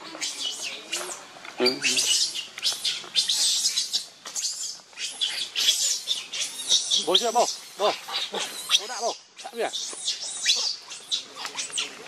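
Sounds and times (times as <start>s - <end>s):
high-pitched animal calls: 0.0s - 12.0s
low animal call: 0.0s - 12.0s.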